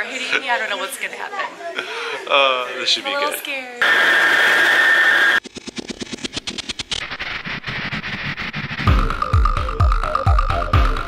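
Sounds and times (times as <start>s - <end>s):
fast clicks: 5.4s - 8.7s
music beat: 7.0s - 11.0s.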